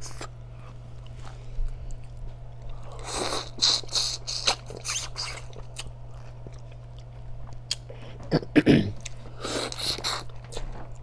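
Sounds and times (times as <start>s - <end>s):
chewing: 0.0s - 8.1s.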